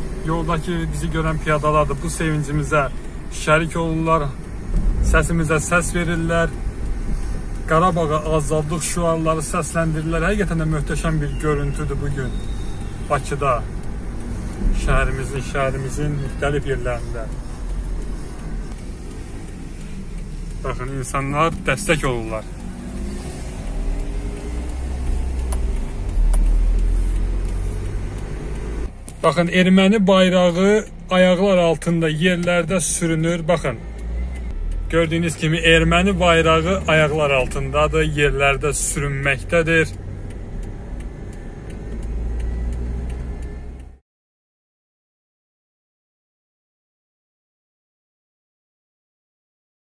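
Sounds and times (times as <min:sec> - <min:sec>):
car engine rumble: 0:00.0 - 0:44.0
road noise: 0:00.0 - 0:44.0
faint light ticks: 0:00.1 - 0:44.0.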